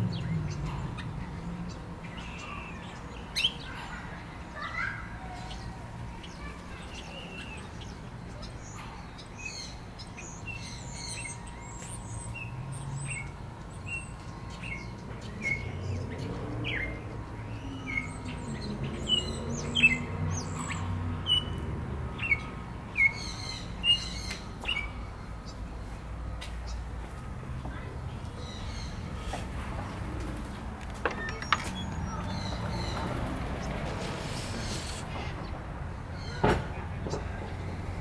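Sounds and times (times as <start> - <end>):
small birds chirping: 0.0 - 38.0.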